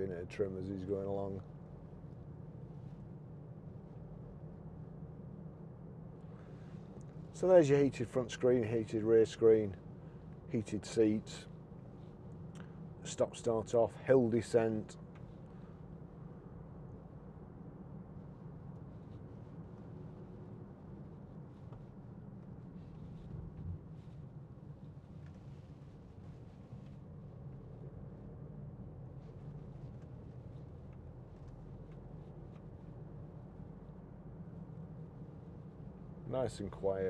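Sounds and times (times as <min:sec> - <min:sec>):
car cabin engine and road rumble: 0:00.0 - 0:37.0.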